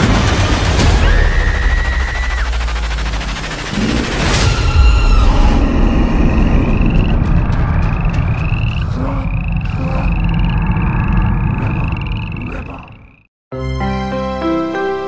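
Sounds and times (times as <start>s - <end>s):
deep rumbling drone: 0.0s - 13.3s
horror music: 0.0s - 13.3s
rising frog chirps: 3.7s - 13.3s.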